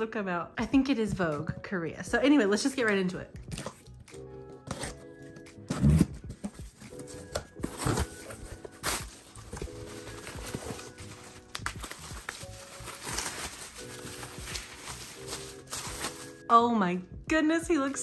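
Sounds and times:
soft background music: 0:00.0 - 0:18.0
bubble wrap handling: 0:03.6 - 0:16.5
cardboard box opening: 0:04.6 - 0:16.4.

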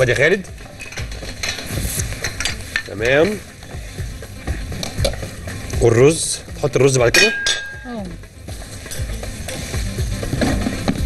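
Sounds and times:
utensils knocking cookware: 0:00.0 - 0:05.9, 0:06.8 - 0:07.8, 0:08.7 - 0:10.0.

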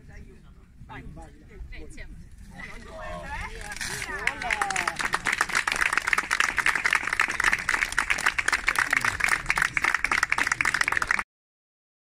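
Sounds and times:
crowd applauding: 0:03.5 - 0:11.2.

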